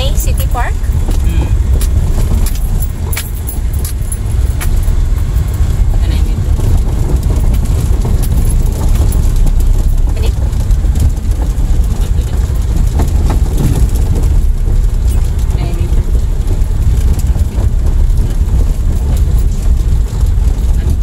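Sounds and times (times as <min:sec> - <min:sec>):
car rumbling on dirt road: 0:00.0 - 0:21.0
clicks and rattles: 0:00.0 - 0:21.0.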